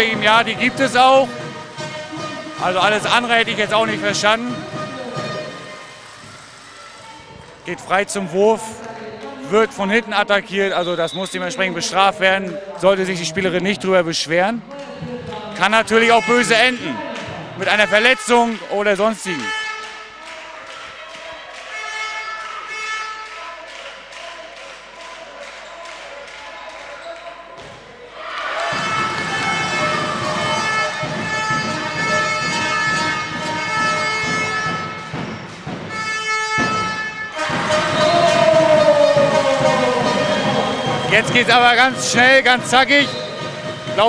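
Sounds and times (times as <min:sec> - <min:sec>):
crowd noise: 0:00.0 - 0:44.0
ball bouncing on hall floor: 0:28.7 - 0:39.9.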